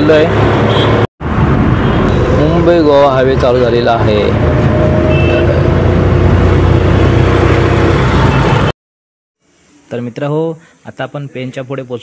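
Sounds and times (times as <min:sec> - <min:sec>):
car engine and road rumble: 0:00.0 - 0:08.7.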